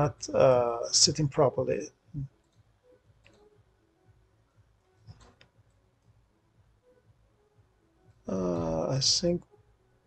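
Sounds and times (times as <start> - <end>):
computer mouse clicks: 3.2 - 3.5, 5.1 - 5.8.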